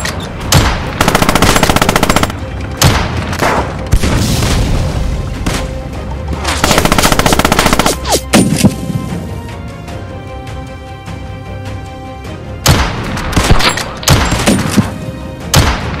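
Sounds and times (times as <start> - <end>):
machine-gun bursts: 1.0 - 2.3, 6.6 - 8.0.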